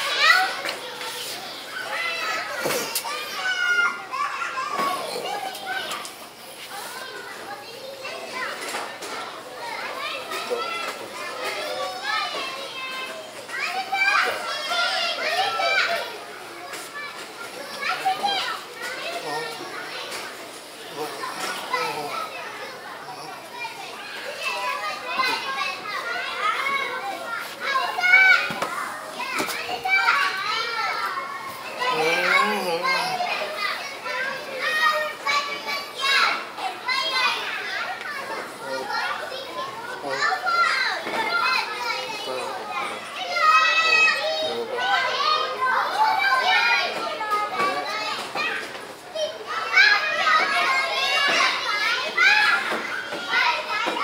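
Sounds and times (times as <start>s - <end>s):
children chattering: 0.0s - 54.0s
continuous talking: 0.0s - 54.0s.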